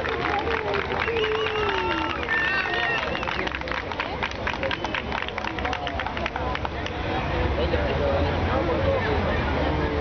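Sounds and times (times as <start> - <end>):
crowd clapping: 0.0 - 7.0
overlapping crowd voices: 0.0 - 10.0.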